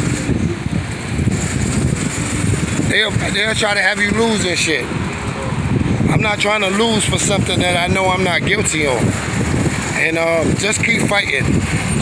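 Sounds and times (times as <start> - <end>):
city street traffic rumble: 0.0 - 12.0
wind buffeting microphone: 0.0 - 12.0.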